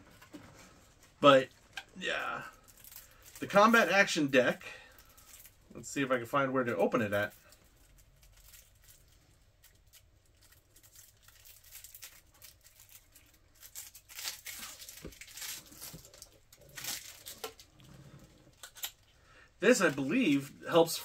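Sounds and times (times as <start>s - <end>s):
plastic wrap crinkling and tearing: 1.0s - 19.2s.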